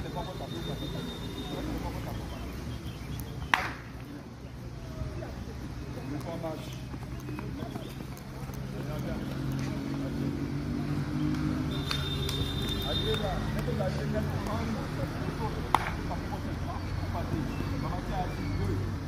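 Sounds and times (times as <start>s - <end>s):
distant voices of players: 0.0s - 19.0s.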